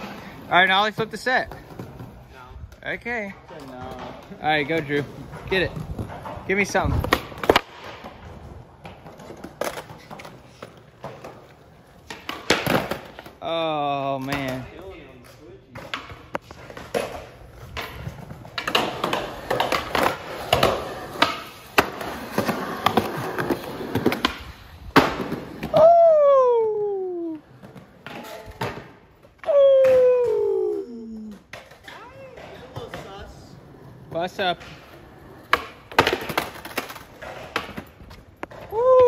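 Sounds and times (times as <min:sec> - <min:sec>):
skateboard wheels rolling on concrete: 0:00.0 - 0:39.0
skateboard impact: 0:02.8 - 0:13.5, 0:14.2 - 0:39.0
long shouts: 0:25.7 - 0:27.4.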